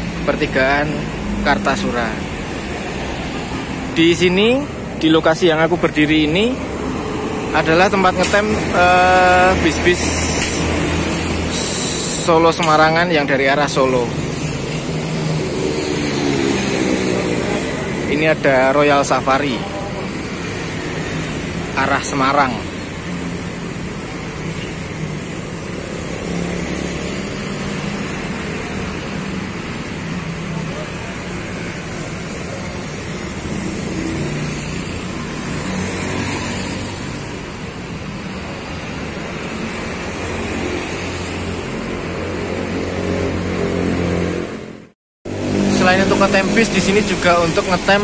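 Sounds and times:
street traffic: 0.0s - 48.0s.

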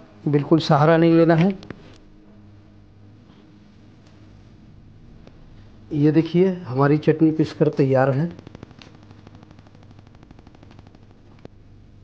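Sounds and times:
low hum: 0.0s - 12.0s
rapid faint clicking: 8.3s - 11.6s.

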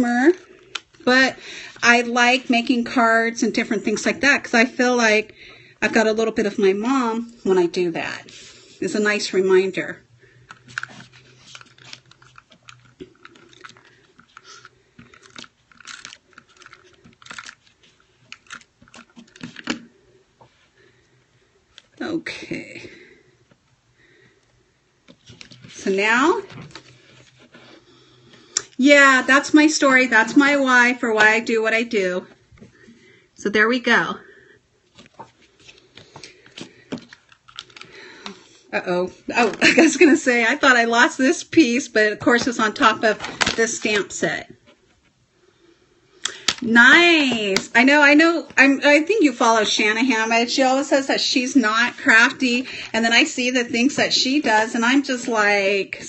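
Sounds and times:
paper crinkling and rustling: 10.5s - 19.9s, 34.9s - 38.0s, 42.7s - 45.1s.

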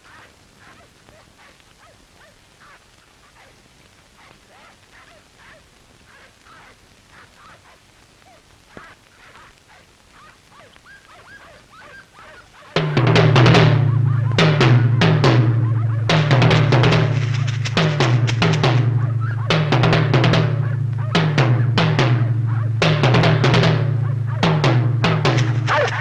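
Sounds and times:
drum rolls and fills: 11.3s - 26.0s.

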